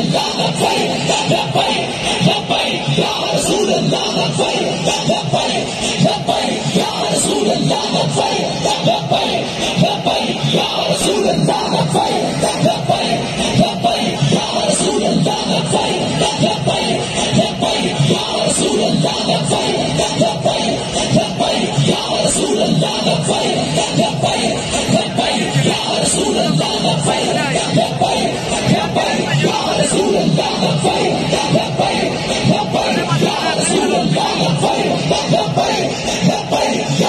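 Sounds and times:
loud music with singing: 0.0 - 37.0.

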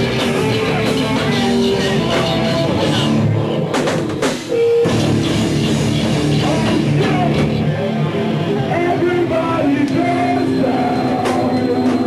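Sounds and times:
distorted electric guitar: 0.0 - 12.0
drum kit: 0.0 - 12.0
heavy rock band playing: 0.0 - 12.0.

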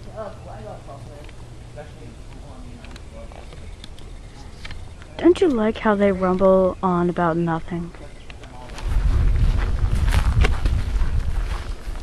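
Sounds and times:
low microphone rumble: 6.6 - 12.0
footfalls on dirt trail: 8.7 - 12.0.

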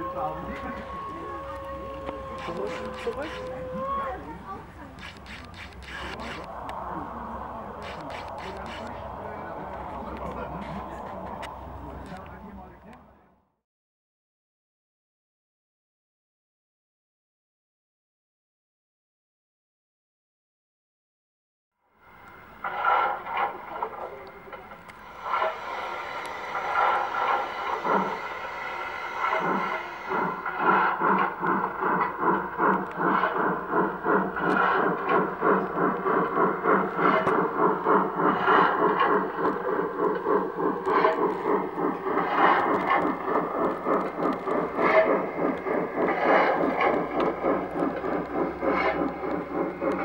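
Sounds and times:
model steam locomotive chuffing: 0.0 - 13.3, 22.0 - 50.0.

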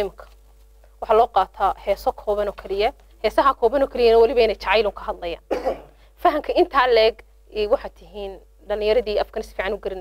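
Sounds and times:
woman speaking: 0.0 - 0.4, 1.0 - 5.5, 6.2 - 10.0
short cough: 5.5 - 6.0.

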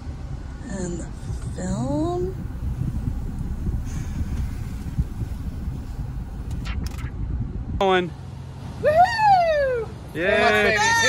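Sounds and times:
low rumble in car cabin: 0.0 - 11.0.

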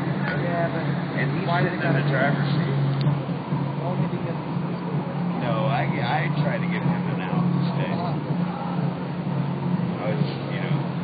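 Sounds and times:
steady low hum: 0.0 - 11.0
people talking: 0.2 - 2.8, 3.7 - 8.9, 9.9 - 10.8.

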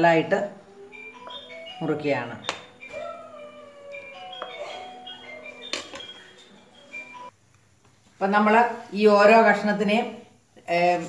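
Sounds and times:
light tinkling music: 0.8 - 7.4.

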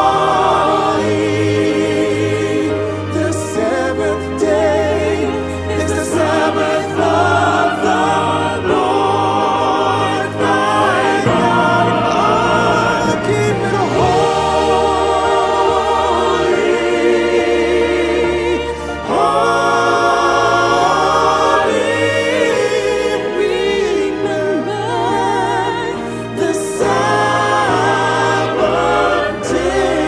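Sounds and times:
gospel choir singing: 0.0 - 30.0
instrumental backing with bass: 0.0 - 30.0.

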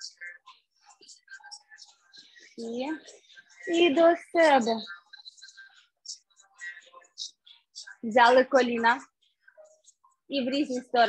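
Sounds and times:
whispered speech: 0.0 - 11.0.

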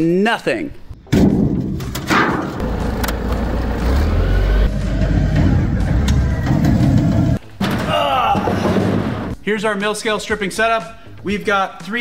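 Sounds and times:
forklift engine rumbling: 2.5 - 7.4.

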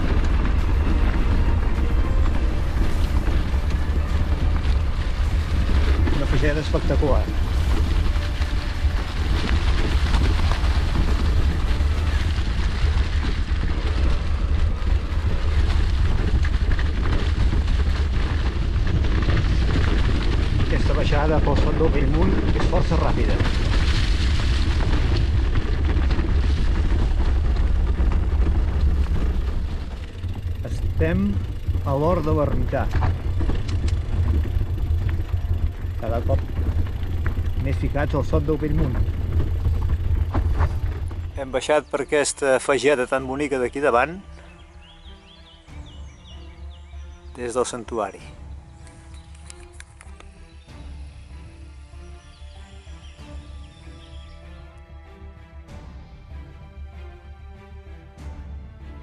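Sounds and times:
wind buffeting microphone: 0.0 - 42.4
bike tyre and trail noise: 0.0 - 57.2.

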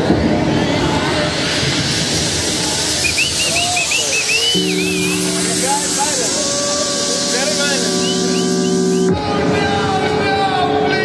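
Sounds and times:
trance music over sound system: 0.0 - 11.0
hissing noise sweep: 1.0 - 9.2.

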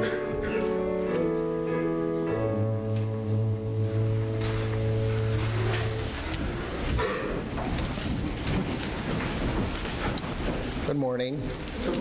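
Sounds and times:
rumbling hiss of room noise: 0.0 - 12.0.

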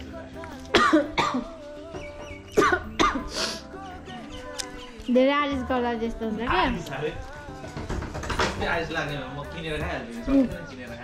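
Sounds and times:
woman coughing: 0.7 - 1.5, 2.6 - 3.4.

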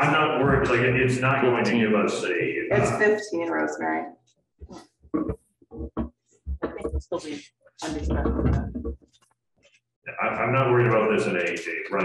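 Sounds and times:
person speaking haltingly: 0.0 - 3.1, 10.1 - 12.0.

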